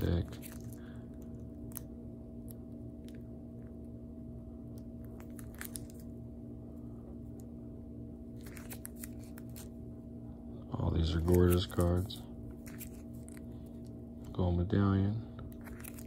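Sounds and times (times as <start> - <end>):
room hum: 0.0 - 16.0.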